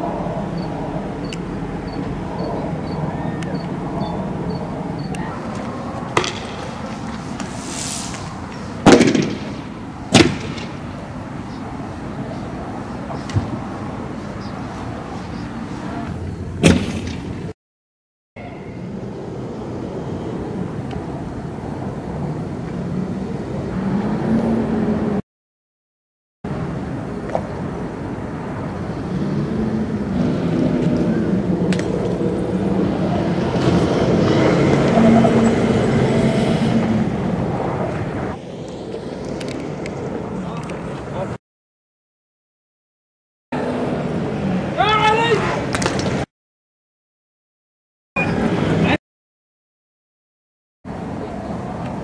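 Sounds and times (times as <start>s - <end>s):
sharp crack: 5.5s - 11.0s, 16.6s - 17.3s, 45.7s - 46.3s
loud bang: 6.1s - 10.8s
vehicle engines running: 26.6s - 38.4s.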